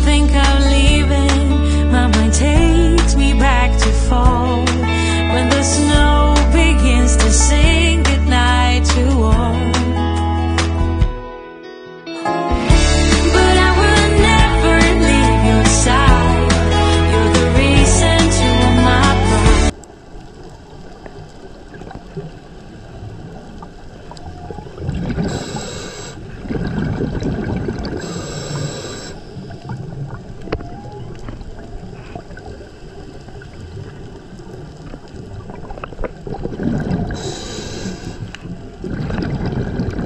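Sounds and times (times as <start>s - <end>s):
whale song: 12.9s - 40.0s
regulator bubbles rushing: 19.7s - 37.4s, 38.1s - 40.0s
underwater hiss and crackle: 19.7s - 40.0s.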